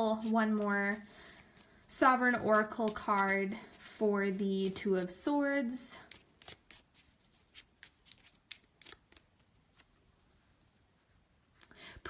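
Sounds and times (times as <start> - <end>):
cards shuffled by hand: 0.1 - 5.3, 6.0 - 9.9.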